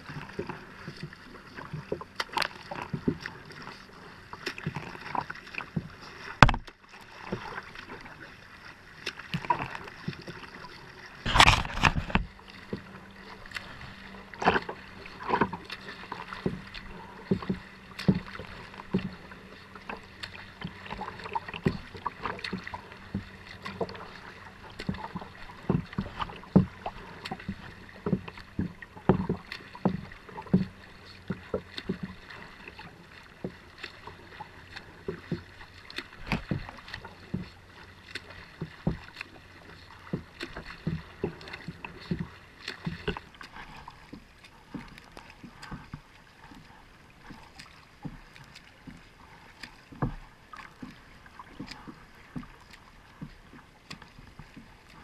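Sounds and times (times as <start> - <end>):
water splashing against kayak hull: 0.0 - 55.0.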